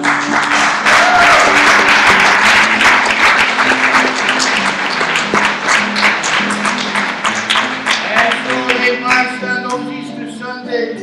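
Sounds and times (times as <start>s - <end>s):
audience clapping: 0.0s - 9.4s
acoustic guitar playing: 0.0s - 11.0s.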